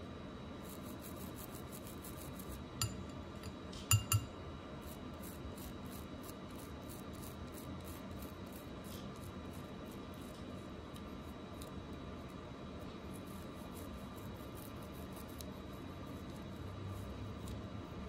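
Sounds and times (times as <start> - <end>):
toothbrush scrubbing a ring: 0.6 - 3.0, 4.8 - 18.0.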